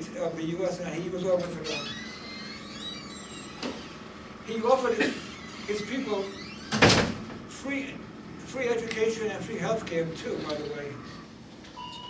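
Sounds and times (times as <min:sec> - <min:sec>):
room noise: 0:00.0 - 0:12.0.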